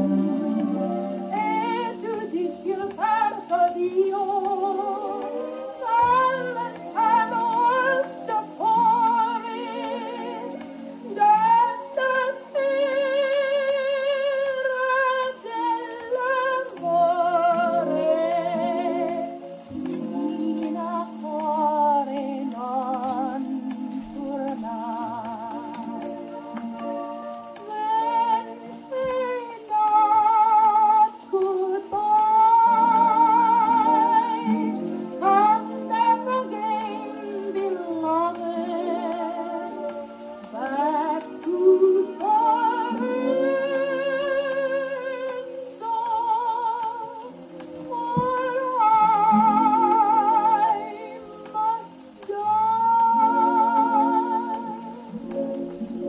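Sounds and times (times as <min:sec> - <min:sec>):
orchestral accompaniment: 0:00.0 - 0:56.0
woman singing with vibrato: 0:00.0 - 0:56.0
record surface clicks: 0:00.1 - 0:56.0.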